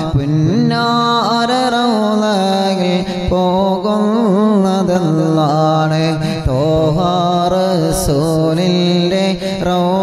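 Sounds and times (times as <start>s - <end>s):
man chanting: 0.0s - 10.0s.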